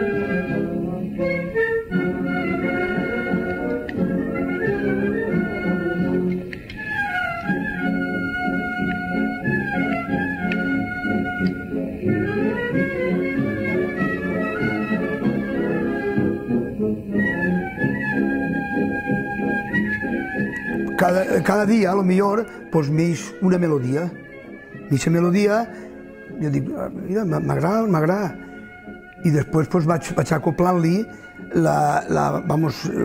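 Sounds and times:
wind band playing: 0:00.0 - 0:31.7.

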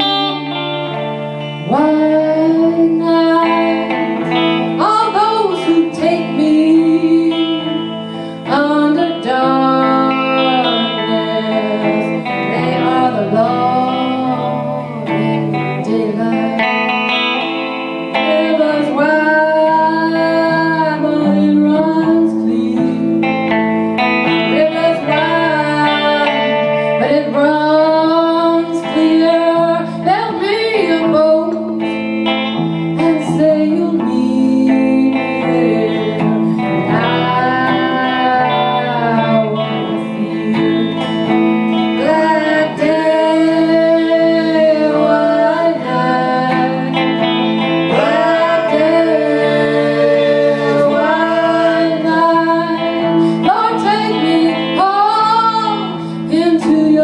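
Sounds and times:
electric guitar accompaniment: 0:00.0 - 0:57.0
slide acoustic guitar: 0:00.0 - 0:57.0.

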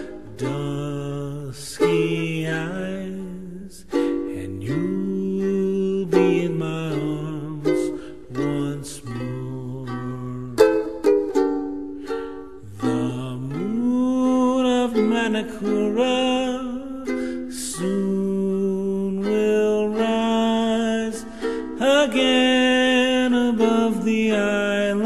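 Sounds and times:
sliding melody line: 0:00.0 - 0:25.0
ukulele strumming ballad: 0:00.0 - 0:25.0.

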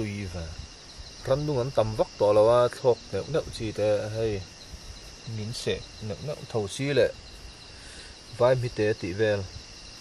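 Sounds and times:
man talking: 0:00.0 - 0:04.5, 0:05.2 - 0:07.2, 0:08.3 - 0:09.6
chorus of night insects: 0:00.0 - 0:10.0.

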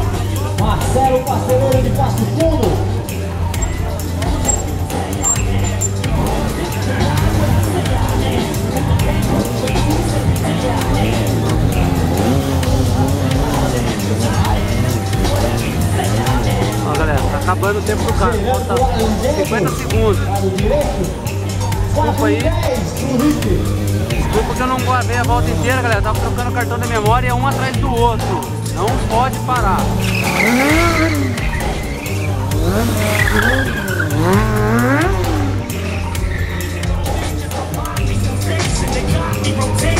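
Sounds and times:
loud music: 0:00.0 - 0:39.9
motorcycle engine revving: 0:00.0 - 0:39.9
tyre squeal: 0:03.5 - 0:06.1, 0:29.8 - 0:34.6, 0:35.9 - 0:37.0.

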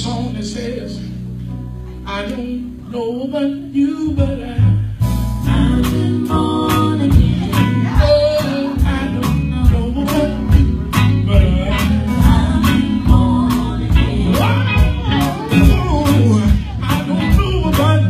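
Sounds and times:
guitar: 0:00.0 - 0:18.0
drum kit beat: 0:04.6 - 0:18.0
singers on microphones: 0:05.4 - 0:18.0.

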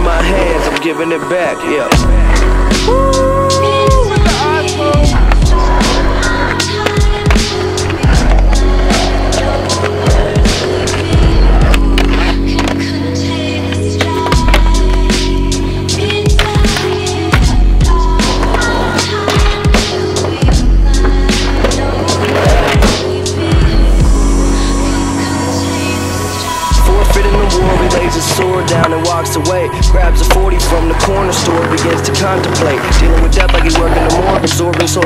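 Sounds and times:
hip-hop beat with heavy bass: 0:00.0 - 0:13.3, 0:14.1 - 0:25.3, 0:26.1 - 0:35.0
skateboards clacking: 0:00.0 - 0:24.0, 0:26.9 - 0:35.0
skateboard wheels rolling on concrete: 0:00.0 - 0:25.3, 0:25.9 - 0:35.0.

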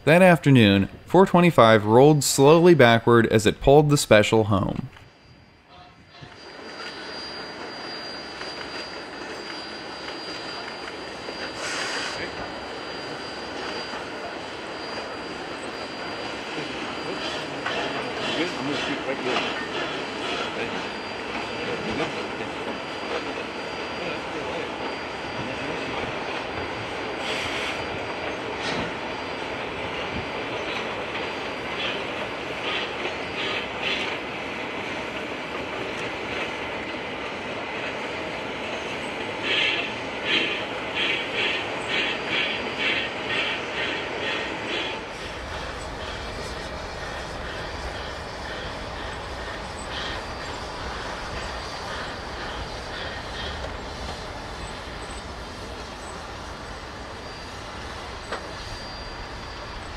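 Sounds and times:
steam train rolling slowly: 0:00.0 - 0:59.9
wheel flanges squealing: 0:06.1 - 0:34.3, 0:38.7 - 0:59.9.

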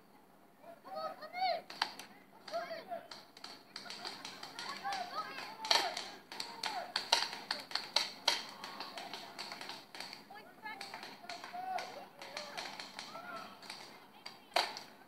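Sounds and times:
distant voices calling: 0:00.5 - 0:15.0
paintball guns firing: 0:01.7 - 0:15.0.

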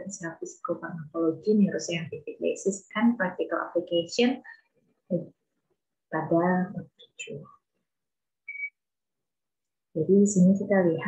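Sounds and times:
short high whistle-like tone: 0:08.5 - 0:08.8.

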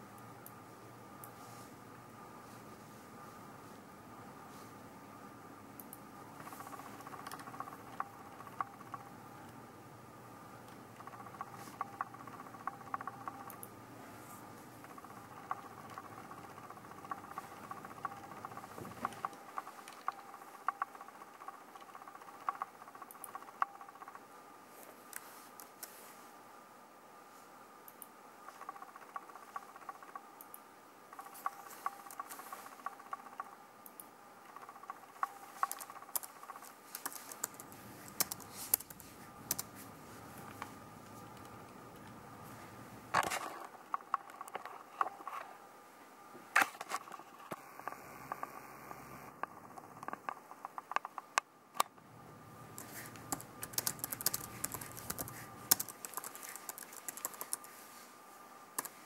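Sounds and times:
faint steady hum: 0:00.0 - 0:59.0
computer mouse clicks: 0:05.8 - 0:09.6, 0:10.6 - 0:13.8, 0:14.6 - 0:24.2, 0:27.8 - 0:42.2, 0:43.2 - 0:45.5, 0:46.6 - 0:51.9, 0:52.7 - 0:57.7, 0:58.8 - 0:59.0.

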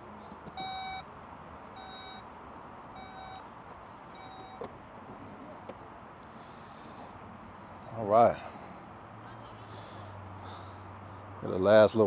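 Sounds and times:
warning beeps: 0:00.6 - 0:01.1, 0:01.8 - 0:02.3, 0:02.9 - 0:03.4, 0:04.1 - 0:04.7.

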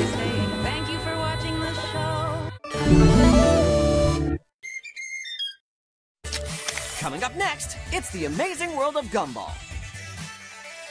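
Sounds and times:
whistle-like descending jingle: 0:04.6 - 0:05.6.

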